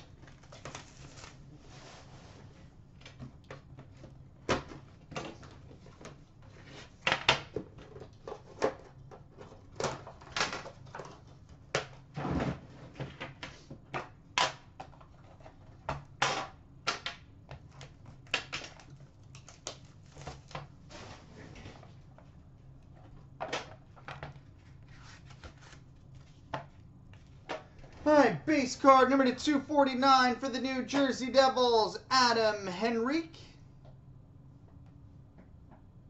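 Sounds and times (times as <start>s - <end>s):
packaging rustling: 0.0s - 1.5s.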